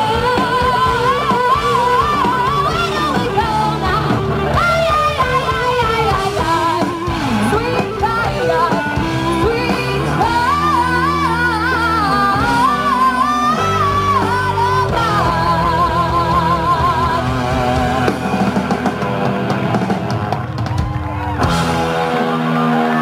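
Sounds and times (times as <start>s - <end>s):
lead singer: 0.0s - 20.3s
rock band playing: 0.0s - 23.0s.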